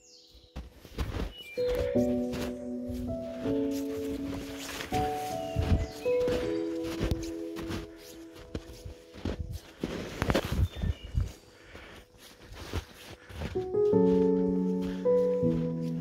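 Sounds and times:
background music with held notes: 0.2s - 16.0s
footsteps crunching through snow: 0.2s - 16.0s.

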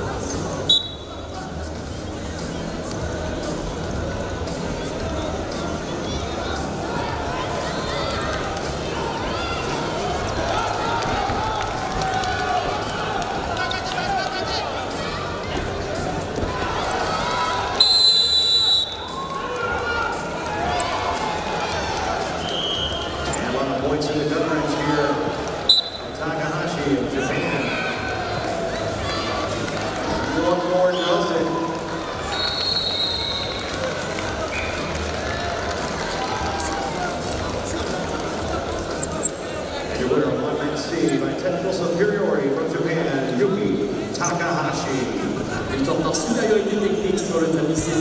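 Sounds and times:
arena crowd noise: 0.0s - 48.0s
referee's whistle blast: 0.7s - 1.1s, 17.8s - 19.1s, 25.7s - 26.1s, 32.3s - 33.5s.

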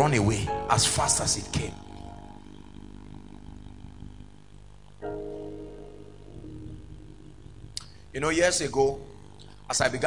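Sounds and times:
soft keyboard chord: 0.0s - 9.7s.

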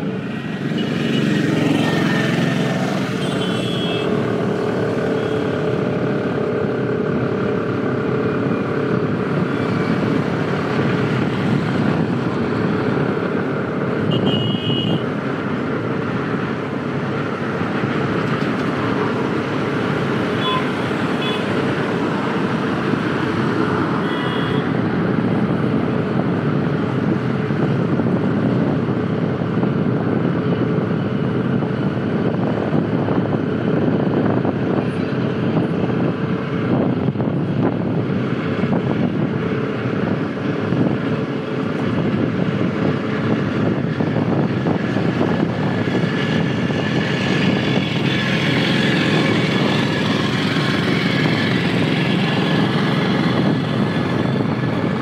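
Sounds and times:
motorcycle engine and road noise: 0.0s - 55.0s
passing traffic: 0.0s - 55.0s.

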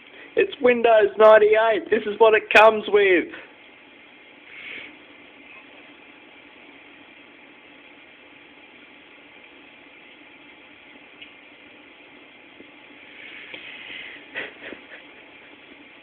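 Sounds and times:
faint background hiss: 0.0s - 16.0s.

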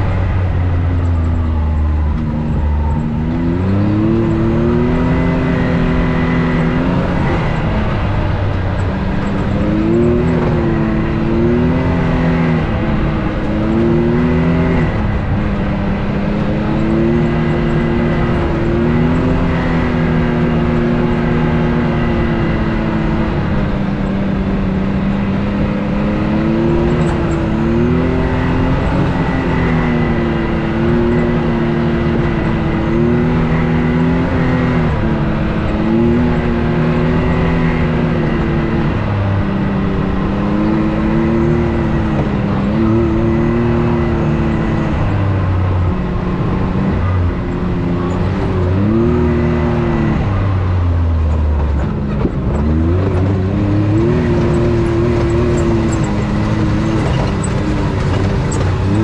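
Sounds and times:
off-road vehicle engine revving: 0.0s - 59.0s.

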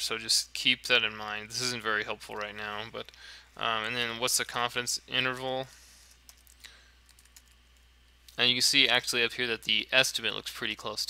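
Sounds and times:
computer keyboard keystrokes: 6.2s - 7.6s.

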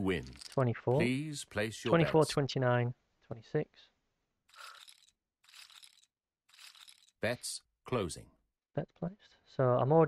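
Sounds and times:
casino chips clattering: 0.2s - 0.6s, 4.5s - 7.2s.

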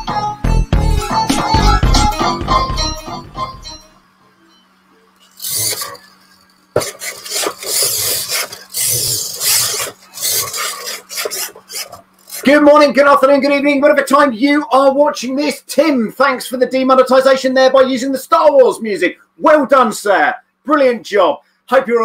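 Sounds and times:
intro music: 0.0s - 4.1s
servos grinding: 4.4s - 12.9s.

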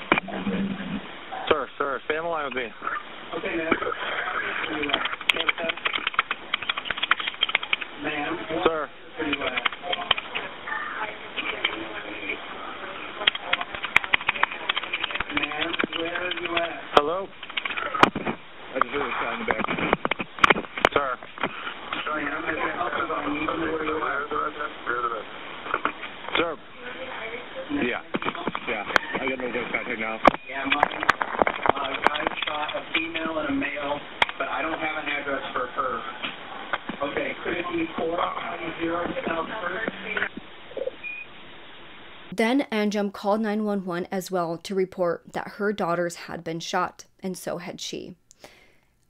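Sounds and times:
faint indistinct voices: 7.2s - 19.9s
indistinct voices on phone line: 42.3s - 48.2s.

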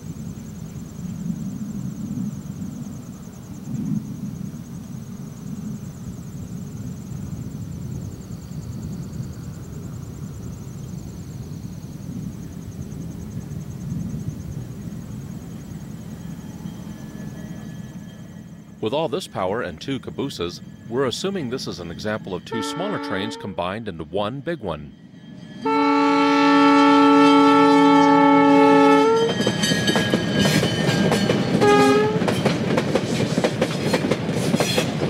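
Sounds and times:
diesel locomotives rumbling: 5.8s - 35.0s.

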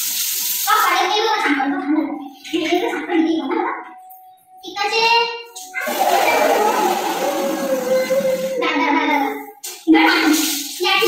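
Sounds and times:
child crying: 5.8s - 8.8s.

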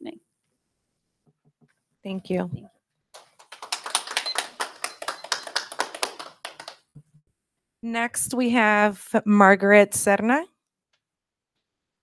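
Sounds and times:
small audience clapping: 3.1s - 7.0s.

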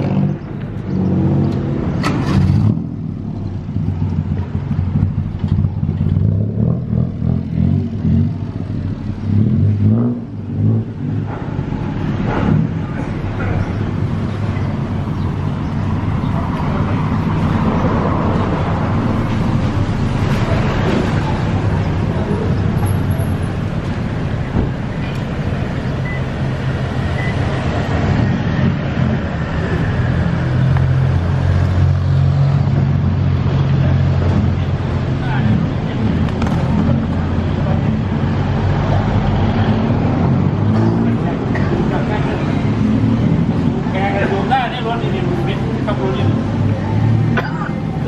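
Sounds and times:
passers-by talking: 11.2s - 27.3s, 33.3s - 48.0s.

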